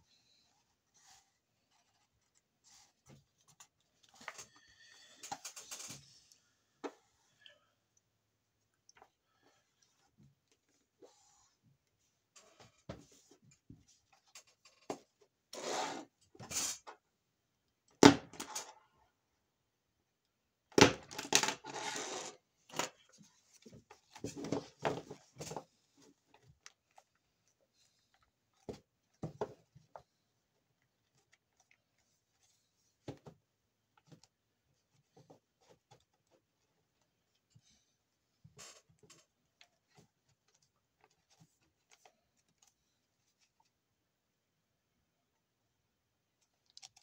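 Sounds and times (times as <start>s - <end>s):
paper rustling and sliding: 21.4s - 22.4s.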